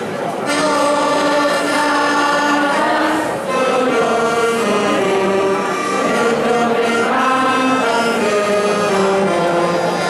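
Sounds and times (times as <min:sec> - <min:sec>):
group singing: 0:00.4 - 0:10.0
saxophones: 0:00.4 - 0:10.0.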